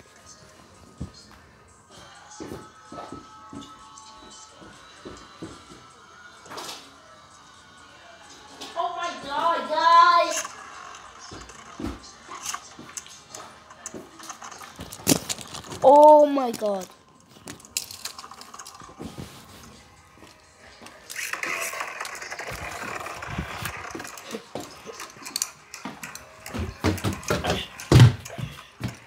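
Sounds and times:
background music: 0.0 - 29.0.

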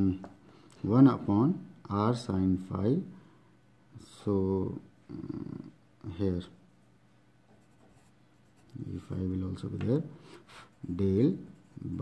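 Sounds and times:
pen scratching on paper: 7.5 - 8.9, 10.7 - 12.0.

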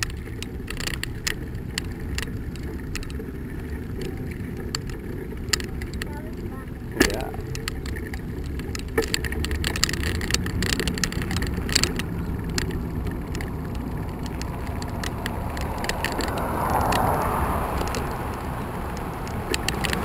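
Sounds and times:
bike clicking and rattling: 0.0 - 20.0
car tyre noise: 0.0 - 20.0
low road rumble: 0.0 - 20.0
wind on microphone: 0.0 - 20.0.

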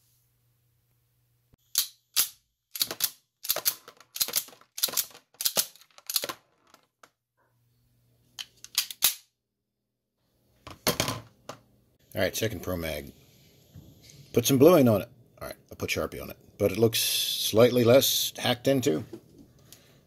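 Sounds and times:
pistol slide racking clacks: 8.4 - 9.2.

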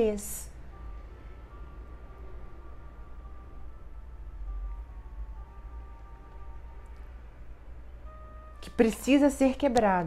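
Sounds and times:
faint soft background music: 0.0 - 10.0
low steady rumble: 0.0 - 10.0.

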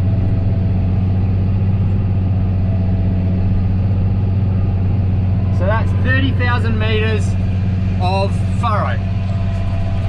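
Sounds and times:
tractor engine humming: 0.0 - 10.0.

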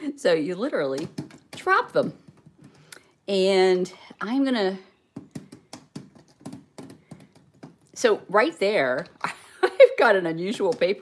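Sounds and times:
gel beads tapping on paper: 1.0 - 2.9, 5.1 - 8.0.

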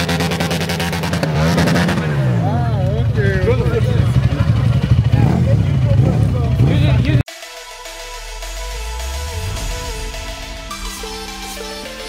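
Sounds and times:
dirt bike engine running: 0.0 - 7.2.

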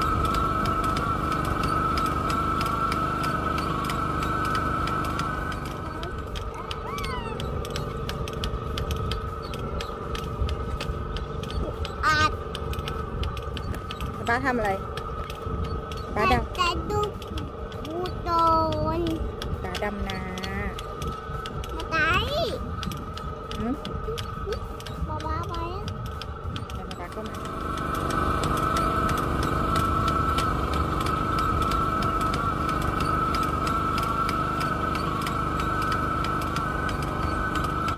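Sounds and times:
distant engine hum: 0.0 - 37.9
voices: 15.9 - 27.5.

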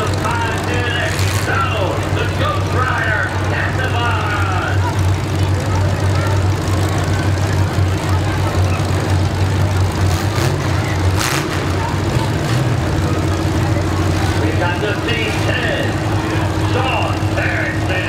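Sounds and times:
car engines idling: 0.0 - 18.0
crowd voices: 0.0 - 18.0.

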